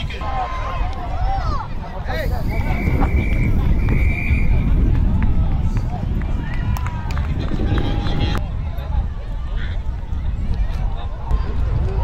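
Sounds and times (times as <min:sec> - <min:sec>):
wind rumbling on microphone: 0:00.0 - 0:12.0
whistle blasts: 0:02.3 - 0:04.6.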